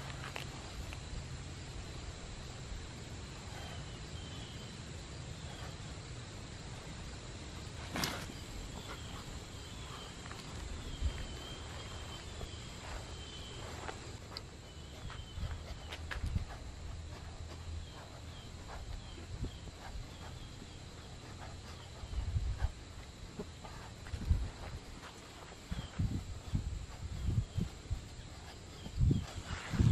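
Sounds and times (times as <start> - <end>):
high insect drone: 0.0 - 29.9
thumps and rustles on grass: 7.8 - 9.0.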